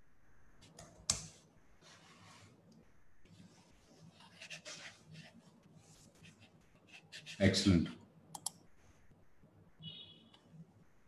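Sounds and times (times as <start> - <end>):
soft clicks: 8.3 - 8.6.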